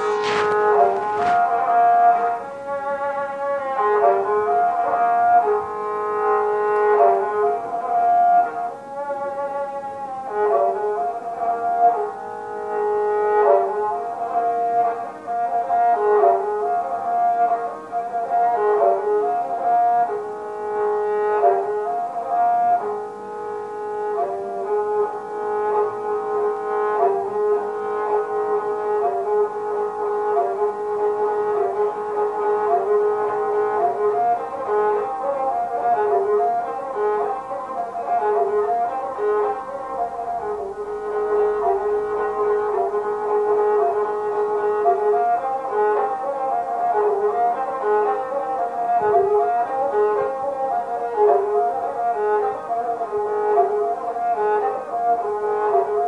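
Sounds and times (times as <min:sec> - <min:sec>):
bowed string instrument with drone: 0:00.0 - 0:56.0.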